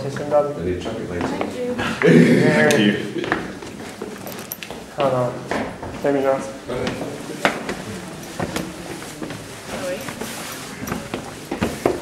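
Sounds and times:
footsteps on stairs: 0.0s - 2.1s, 3.1s - 12.0s
faint voices murmuring: 0.0s - 12.0s.

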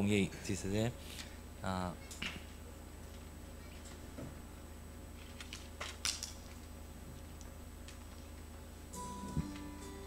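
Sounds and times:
steady low hum: 0.0s - 10.0s.

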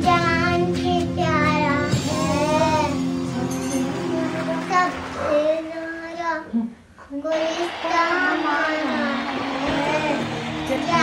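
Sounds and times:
small girl singing: 0.0s - 3.1s, 4.0s - 11.0s.

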